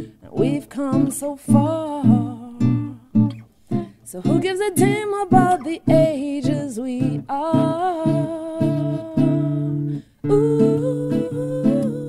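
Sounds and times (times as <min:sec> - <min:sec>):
woman singing: 0:00.0 - 0:03.3, 0:04.0 - 0:12.0
acoustic guitar chords: 0:00.0 - 0:12.0.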